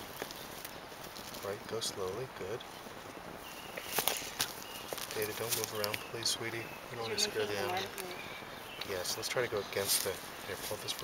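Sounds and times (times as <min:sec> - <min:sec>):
rustling handling noise: 0:00.0 - 0:06.1.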